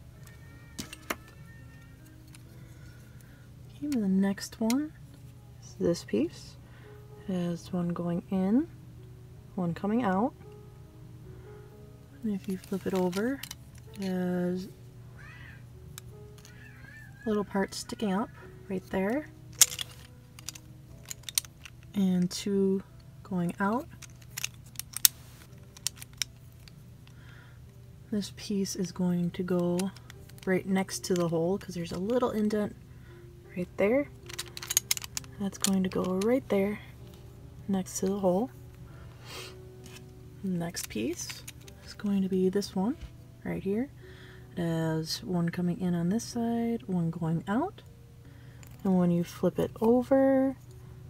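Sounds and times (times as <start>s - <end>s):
faint background music: 0.0s - 51.0s
plastic puzzle pieces clicking: 0.2s - 2.6s, 12.4s - 14.1s, 15.9s - 16.8s, 18.8s - 22.4s, 23.5s - 27.2s, 29.4s - 32.6s, 34.2s - 36.4s, 40.7s - 41.9s.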